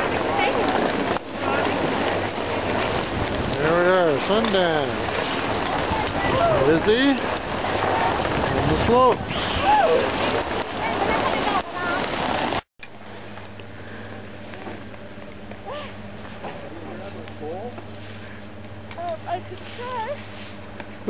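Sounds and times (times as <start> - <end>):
low steady hum: 0.0 - 21.0
people's voices: 3.5 - 10.2.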